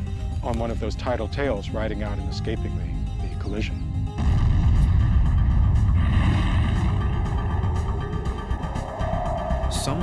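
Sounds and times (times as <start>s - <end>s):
deep cinematic rumble: 4.2s - 10.0s.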